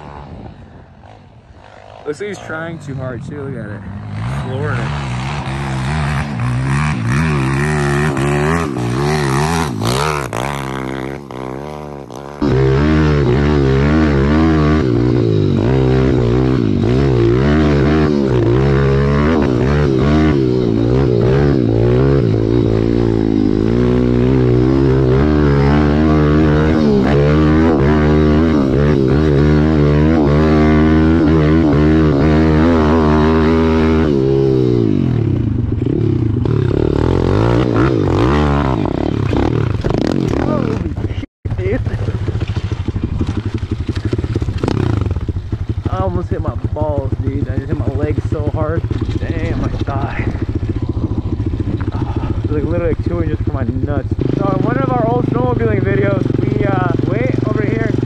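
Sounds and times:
motorbike engine revving: 0.0s - 58.0s.

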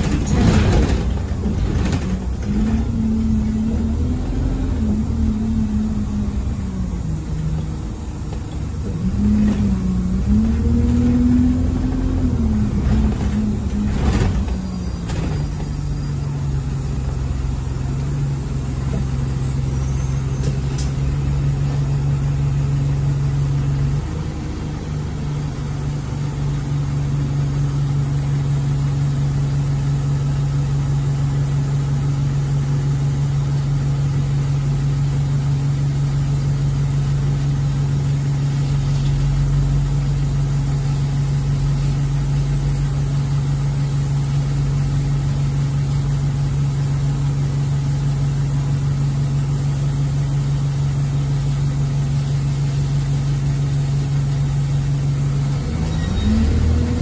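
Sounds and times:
bus diesel engine idling: 0.0s - 57.0s.

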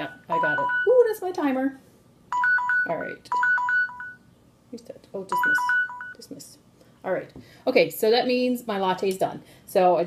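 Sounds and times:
smartphone timer alarm beeping: 0.0s - 1.0s, 2.3s - 4.3s, 5.3s - 6.2s.

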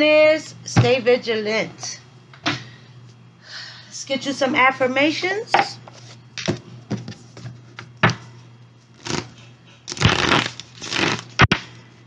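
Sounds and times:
cards shuffling: 9.9s - 11.6s.

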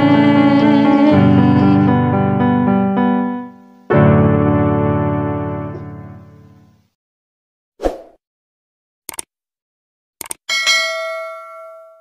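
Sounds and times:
bright bell ding: 10.5s - 12.0s.

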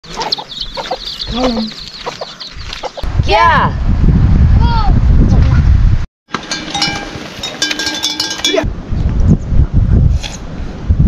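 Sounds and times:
chicken clucking: 0.0s - 3.0s
chicken squawk: 0.1s - 3.0s.

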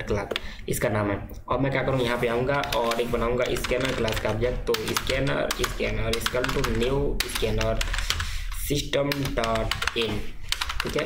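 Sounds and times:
computer keyboard typing: 2.1s - 11.0s.

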